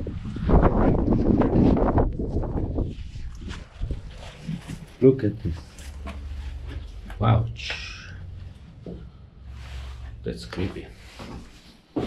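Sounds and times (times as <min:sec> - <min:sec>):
wind rumbling on microphone: 0:00.0 - 0:07.6.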